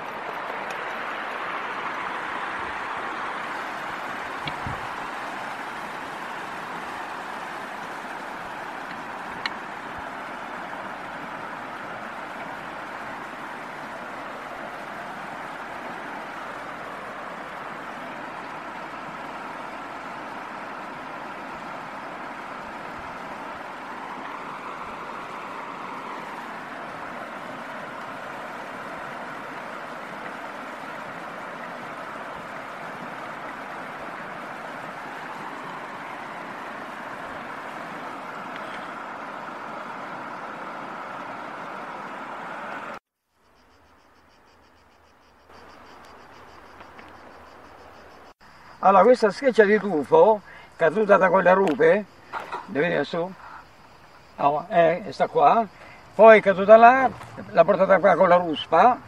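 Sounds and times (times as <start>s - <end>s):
river water over weir: 0.0s - 59.0s.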